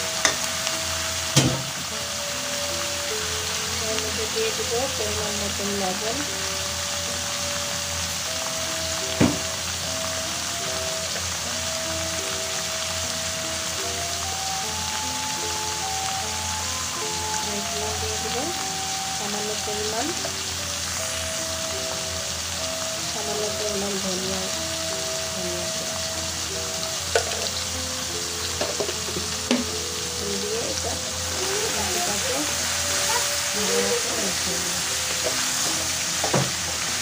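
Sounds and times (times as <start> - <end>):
soft background music: 0.0 - 37.0
vegetables sizzling in oil: 0.0 - 37.0.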